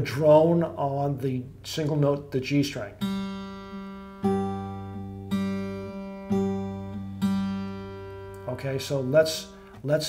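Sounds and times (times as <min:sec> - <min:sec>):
fingerpicked acoustic guitar: 0:02.8 - 0:10.0.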